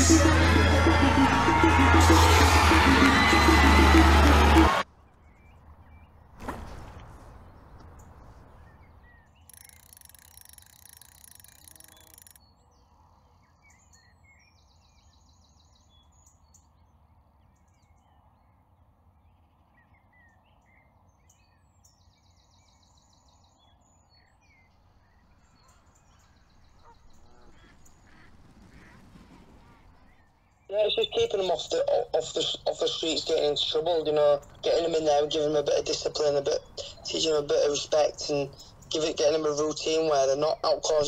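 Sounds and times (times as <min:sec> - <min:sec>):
small birds chirping: 0:07.2 - 0:41.0.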